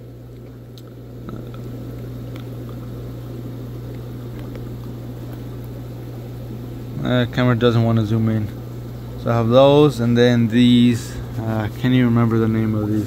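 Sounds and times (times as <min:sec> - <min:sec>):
aquarium filter bubbling: 0:00.0 - 0:13.0
low hum: 0:00.0 - 0:13.0.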